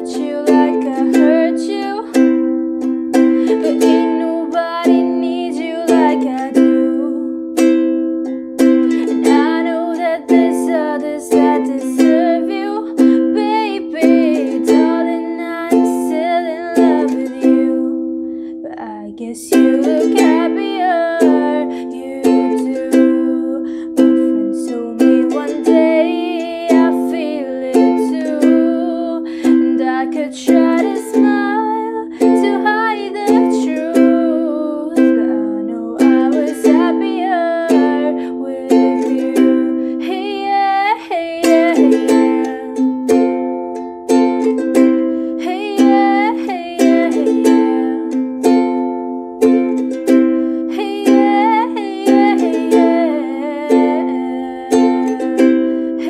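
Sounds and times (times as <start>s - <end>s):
ukulele strumming: 0.0s - 56.0s
woman singing: 0.0s - 56.0s.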